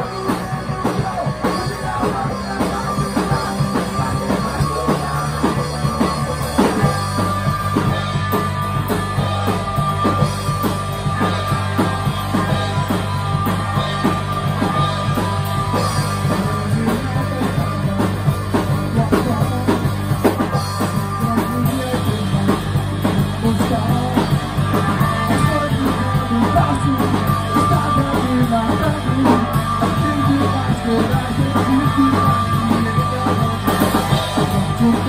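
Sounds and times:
drum kit: 0:00.0 - 0:35.0
electric bass: 0:00.0 - 0:35.0
electric guitar: 0:00.0 - 0:35.0.

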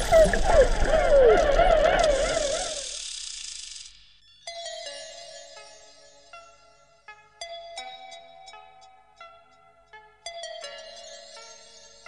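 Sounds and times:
slow synth music: 0:00.0 - 0:03.0
dolphins chirping underwater: 0:00.0 - 0:03.2.

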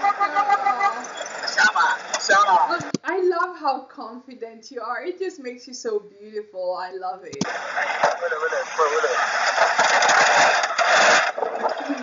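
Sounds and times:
distorted voices talking: 0:00.0 - 0:03.4, 0:07.3 - 0:12.0.

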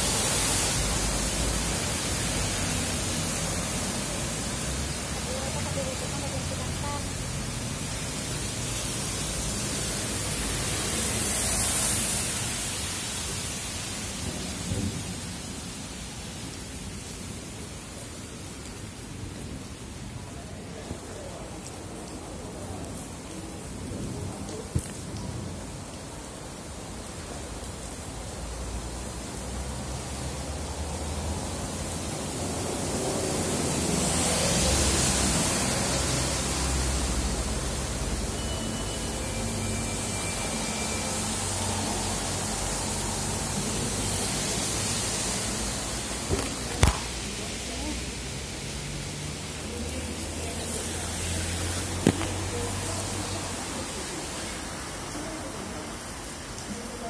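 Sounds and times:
steady rain hiss: 0:00.0 - 0:57.0.

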